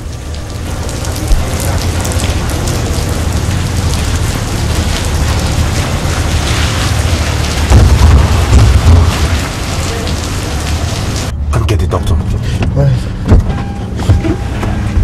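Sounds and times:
heavy rain on pavement: 0.0s - 11.3s.

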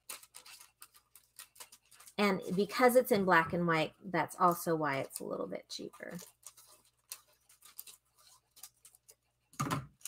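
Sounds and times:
scissors snipping foil: 0.0s - 3.1s, 4.4s - 9.2s
foil crinkling: 0.0s - 3.3s, 4.3s - 10.0s.

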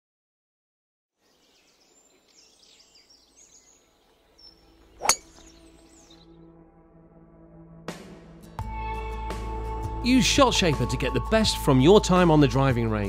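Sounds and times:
faint birdsong: 1.2s - 6.5s
soft sustained music tones: 2.1s - 8.0s
golf club striking ball: 5.0s - 5.6s.

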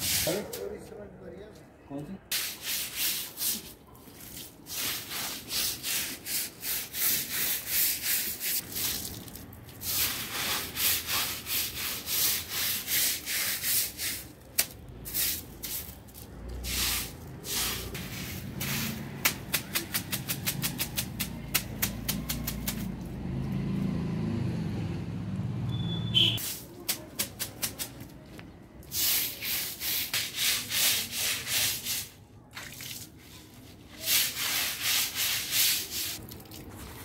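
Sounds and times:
stick broom scrubbing concrete: 0.0s - 0.7s, 2.3s - 23.1s, 28.9s - 32.2s, 33.0s - 37.0s.

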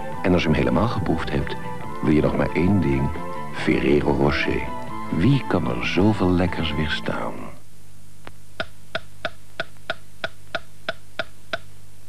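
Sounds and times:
metronome ticking: 8.6s - 11.7s.

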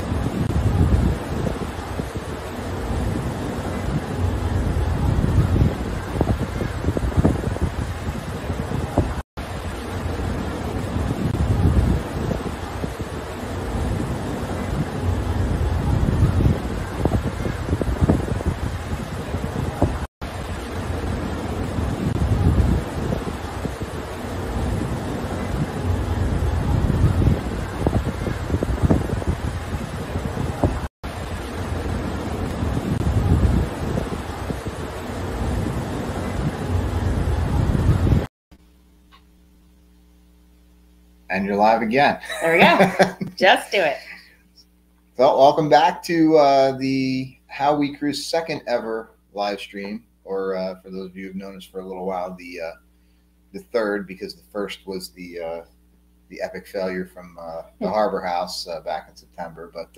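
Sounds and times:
rushing water of ship's wake: 0.0s - 38.3s
wind buffeting microphone: 0.0s - 38.3s.

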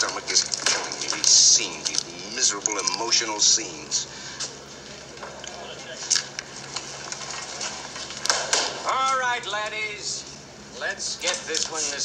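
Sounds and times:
murmur of background voices: 0.0s - 12.0s.

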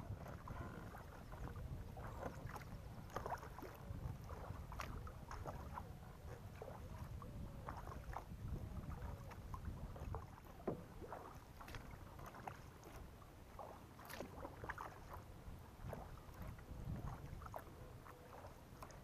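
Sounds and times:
paddle splashes: 0.0s - 19.0s.

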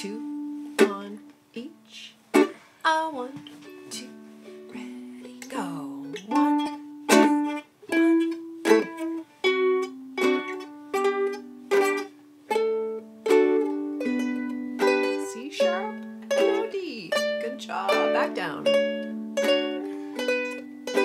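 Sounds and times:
ukuleles plucking a scale: 0.0s - 1.3s, 2.0s - 21.0s.

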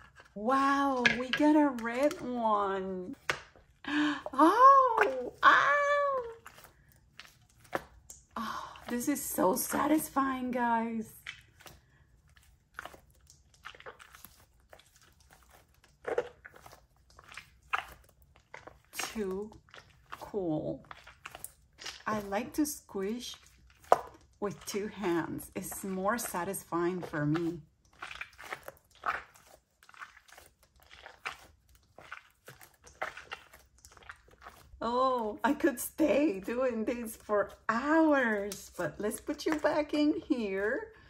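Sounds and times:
stress ball squishing: 0.0s - 41.0s.

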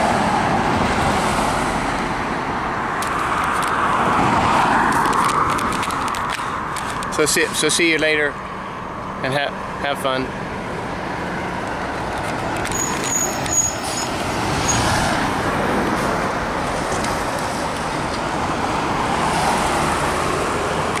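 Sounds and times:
road traffic: 0.0s - 21.0s
high-pitched squeak: 12.7s - 15.0s.

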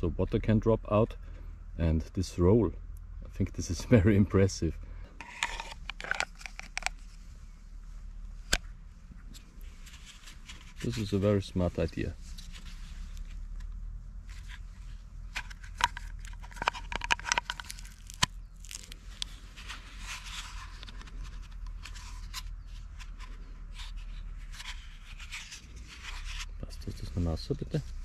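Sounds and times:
rustling handling noise: 5.0s - 28.0s.

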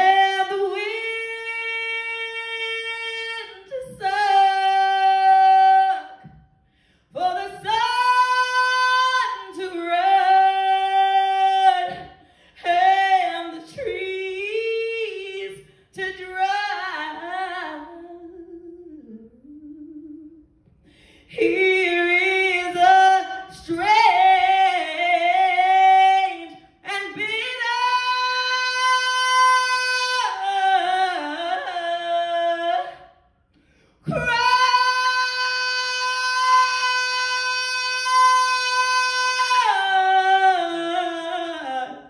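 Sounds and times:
woman singing unaccompanied: 21.3s - 33.0s, 34.1s - 42.0s.

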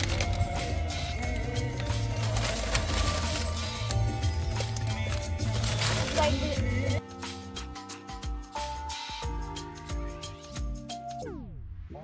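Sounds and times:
music with steady bass beat: 0.0s - 11.6s.

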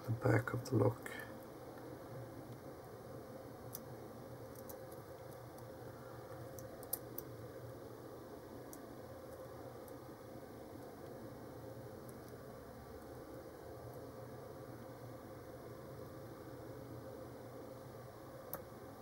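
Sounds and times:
background hum and hiss: 0.0s - 19.0s.

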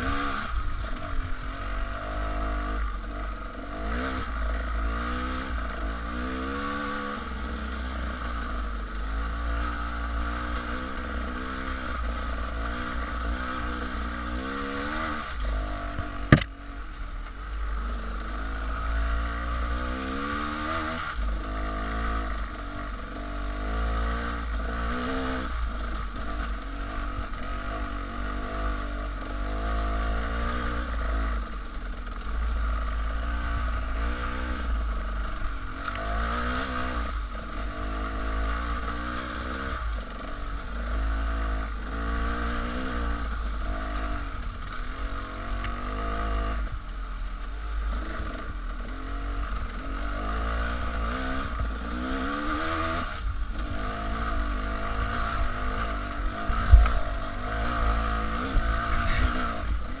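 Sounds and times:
dirt bike engine revving: 0.0s - 46.8s, 47.8s - 60.0s
sharp knock: 16.3s - 16.5s.

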